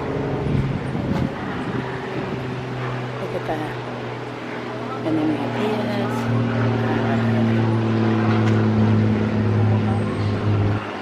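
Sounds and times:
engine running: 0:00.0 - 0:11.0.

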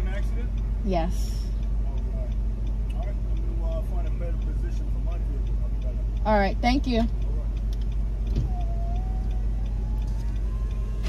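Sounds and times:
car engine running low rumble: 0:00.0 - 0:11.0.

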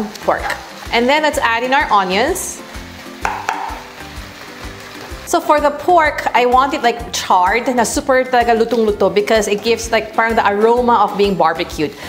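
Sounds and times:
meat and onions sizzling: 0:00.0 - 0:12.0
soft background music: 0:00.0 - 0:12.0
spoon knocking on pan: 0:03.1 - 0:04.0
wooden spoon stirring: 0:03.2 - 0:05.3.

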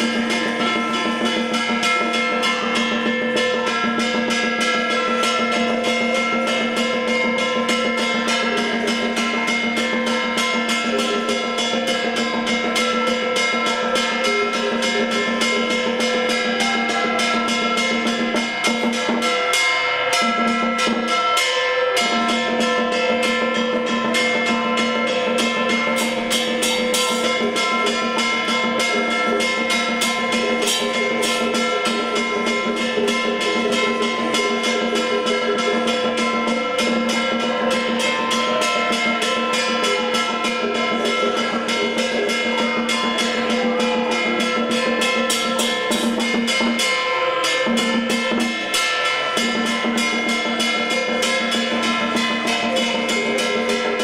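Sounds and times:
rapid drum strikes: 0:00.0 - 0:54.0
wood-block strikes: 0:00.0 - 0:54.0.

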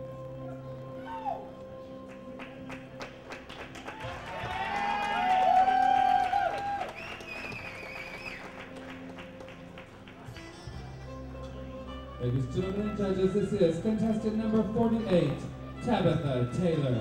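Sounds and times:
background music: 0:00.0 - 0:17.0
scattered clapping: 0:02.1 - 0:10.5
audience whooping and cheering: 0:03.7 - 0:08.6.

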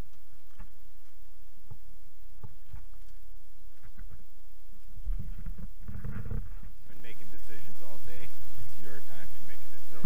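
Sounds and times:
wind on microphone: 0:00.0 - 0:10.0
person's voice: 0:06.8 - 0:10.0.

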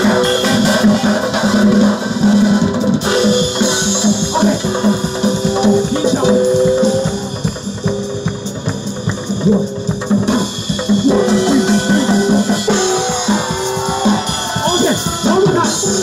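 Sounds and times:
barrel drums: 0:00.0 - 0:16.0
drum kit: 0:00.0 - 0:16.0
percussion ensemble playing: 0:00.0 - 0:16.0.

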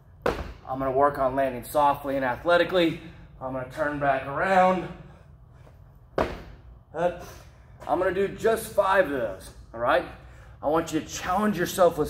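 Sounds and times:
feet landing on rubber floor: 0:00.2 - 0:00.6, 0:06.1 - 0:06.6.

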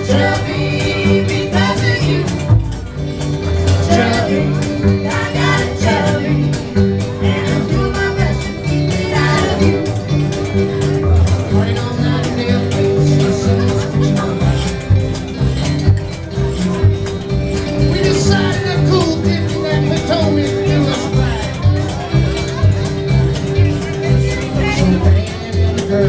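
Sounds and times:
voices singing: 0:00.0 - 0:15.0, 0:17.7 - 0:26.0
acoustic guitars strummed: 0:00.0 - 0:26.0
steady beat: 0:00.0 - 0:26.0
upright bass plucked: 0:00.0 - 0:26.0.

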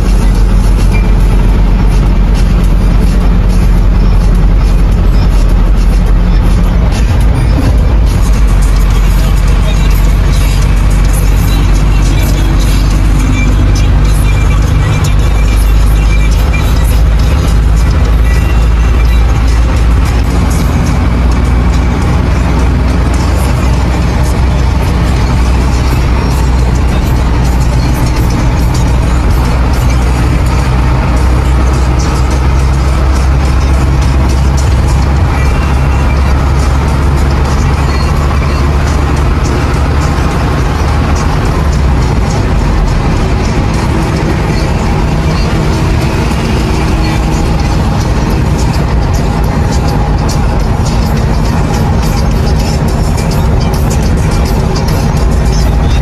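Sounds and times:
bus engine drone: 0:00.0 - 0:56.0
music playing: 0:00.0 - 0:56.0
road noise: 0:00.0 - 0:56.0.

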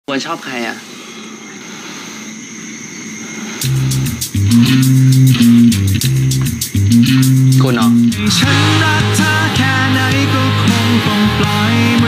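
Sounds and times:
deep bass note with high ticks: 0:03.6 - 0:10.6.

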